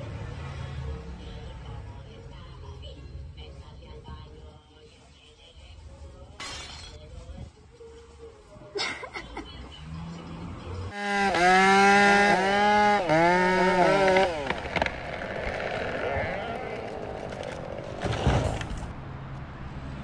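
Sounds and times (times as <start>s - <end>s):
chainsaw cutting tree trunk: 11.0s - 18.2s.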